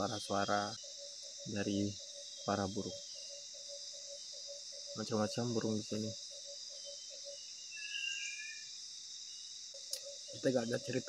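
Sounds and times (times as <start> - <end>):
insect chorus: 0.0 - 11.0
whistled bird notes: 0.7 - 8.7.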